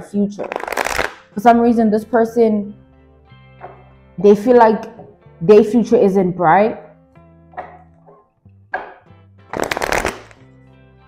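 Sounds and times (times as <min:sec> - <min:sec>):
soft background music: 0:00.0 - 0:11.0
cards being shuffled: 0:00.4 - 0:01.2, 0:09.5 - 0:10.4.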